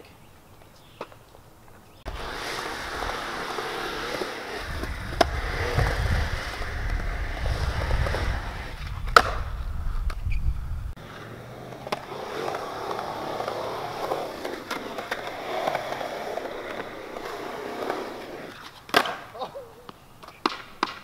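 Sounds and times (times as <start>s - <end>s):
skateboard wheels rolling on concrete: 0.0s - 21.0s
skateboard clack: 2.1s - 10.3s, 11.0s - 21.0s.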